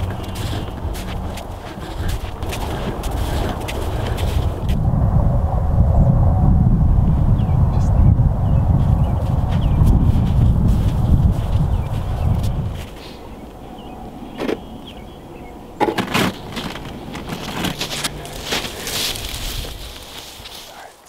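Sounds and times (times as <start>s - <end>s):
wind buffeting microphone: 0.0s - 20.6s.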